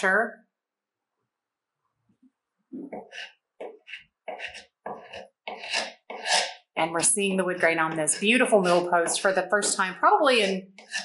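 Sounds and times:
paint scraper on wood: 0:03.0 - 0:11.0.

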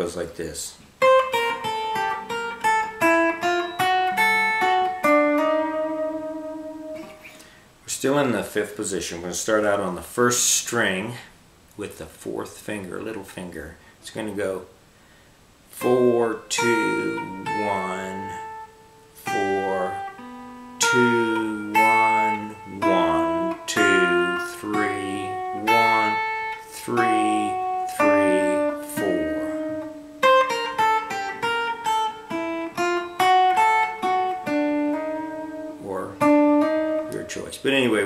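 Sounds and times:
electric guitar lead melody: 0:01.0 - 0:07.6, 0:15.8 - 0:38.0.

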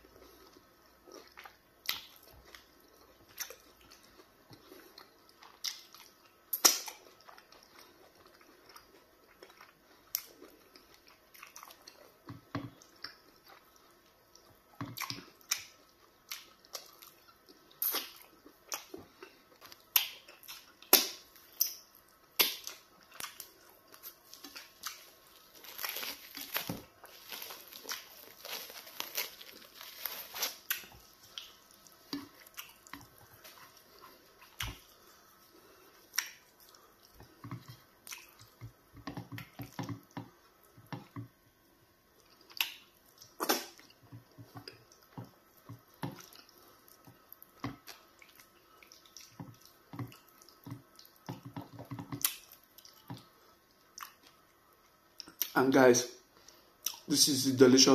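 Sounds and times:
wet chewing: 0:00.2 - 0:41.4, 0:42.2 - 0:55.6
lip smacks: 0:05.6 - 0:07.2, 0:19.6 - 0:25.1, 0:36.1 - 0:38.6, 0:42.3 - 0:44.0.

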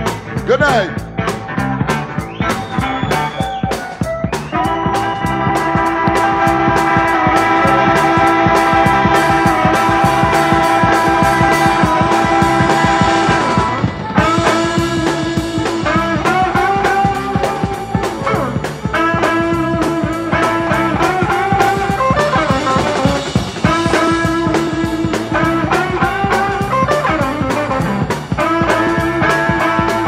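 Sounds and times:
bass and drums: 0:00.0 - 0:30.0
electric guitar: 0:00.0 - 0:30.0.

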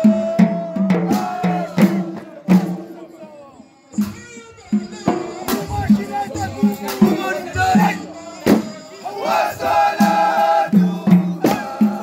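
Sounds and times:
men chanting together: 0:00.0 - 0:03.0, 0:06.0 - 0:12.0
drumbeat: 0:00.0 - 0:03.2, 0:03.9 - 0:12.0.

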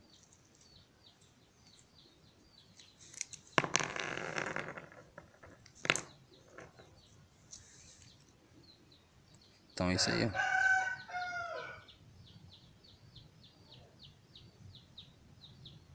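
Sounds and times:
small birds chirping: 0:00.0 - 0:03.7, 0:04.9 - 0:15.9.

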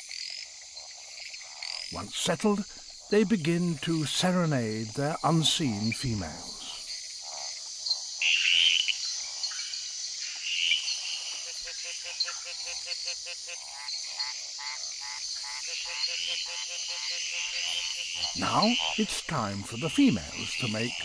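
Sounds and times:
frogs croaking: 0:00.0 - 0:21.0
high insect chorus: 0:00.0 - 0:21.0.

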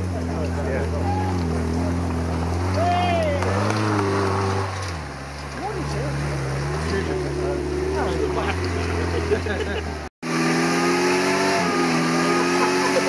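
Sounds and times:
buggy engine climbing hill: 0:00.0 - 0:13.0.

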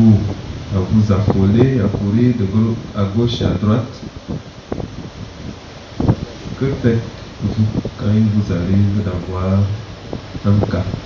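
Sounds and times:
hissing room noise: 0:00.0 - 0:11.0.

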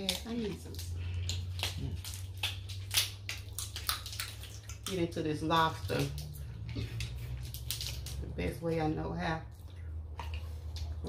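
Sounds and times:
seafood shells cracking by hand: 0:00.0 - 0:05.0, 0:05.8 - 0:08.3
steady low hum: 0:00.0 - 0:11.0.

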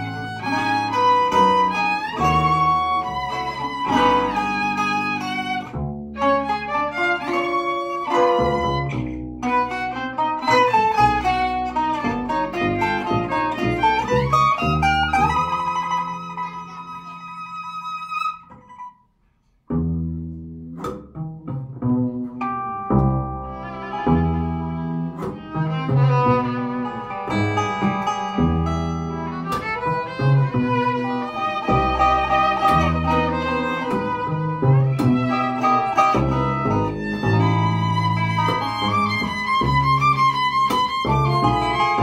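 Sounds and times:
violin guitar and double bass: 0:00.0 - 0:18.9, 0:19.6 - 0:42.0.

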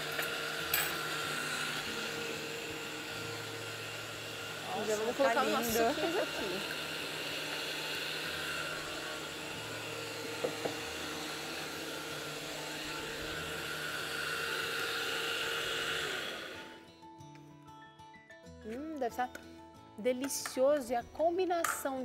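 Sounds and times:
electric blender running: 0:00.0 - 0:16.9.

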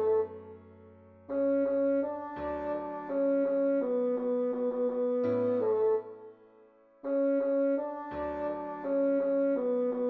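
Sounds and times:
bassoon melody: 0:00.0 - 0:06.4, 0:07.0 - 0:10.0.

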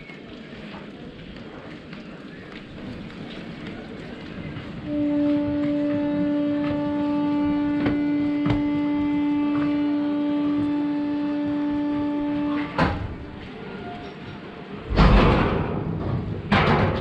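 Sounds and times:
train horn long blast: 0:04.8 - 0:14.3
sharp knocks: 0:07.6 - 0:09.8
loud clunk: 0:12.6 - 0:13.3, 0:14.9 - 0:17.0.

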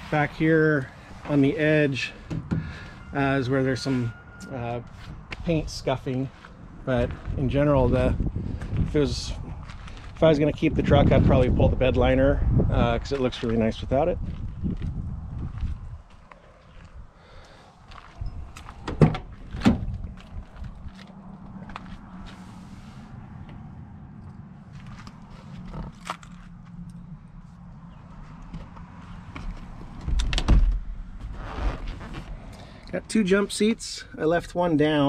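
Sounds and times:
seat thump: 0:18.8 - 0:20.0.

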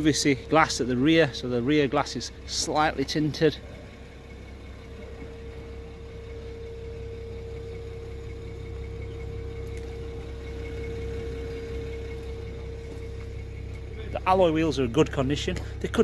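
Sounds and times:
car engine idling: 0:00.0 - 0:16.0
engine whine: 0:00.0 - 0:16.0.

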